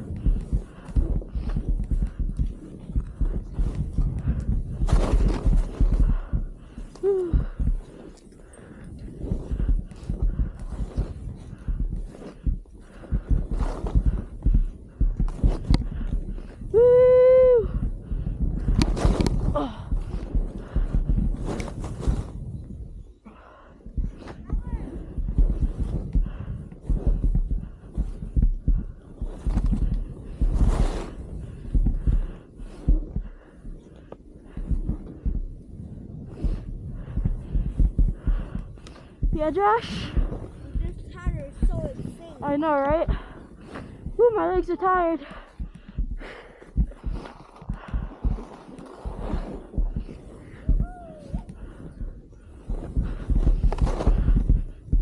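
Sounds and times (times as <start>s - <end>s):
skis running through snow: 0.0s - 17.0s, 18.2s - 22.7s, 23.4s - 45.6s, 46.2s - 54.8s
wind rumbling on microphone: 0.0s - 55.0s
person whooping: 16.7s - 17.8s, 50.7s - 51.5s.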